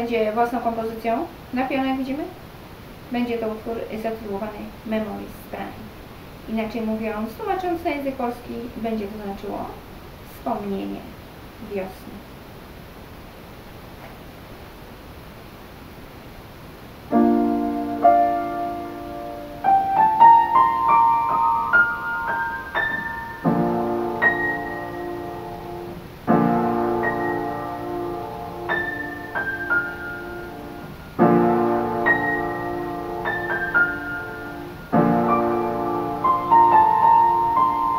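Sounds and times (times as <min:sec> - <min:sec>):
room noise hiss: 0:00.0 - 0:37.9
piano chord ringing: 0:17.1 - 0:37.9.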